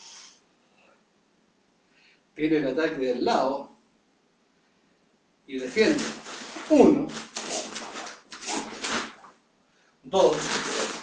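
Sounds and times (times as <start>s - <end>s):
uniform swishing: 5.6s - 9.3s.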